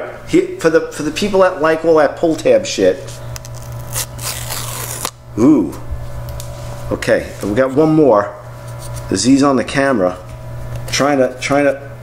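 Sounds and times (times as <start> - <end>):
paper ripping: 3.1 - 5.2.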